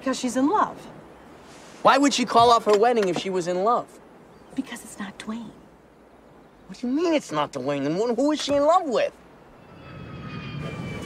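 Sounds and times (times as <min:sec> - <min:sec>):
low rumble: 0:09.4 - 0:11.0.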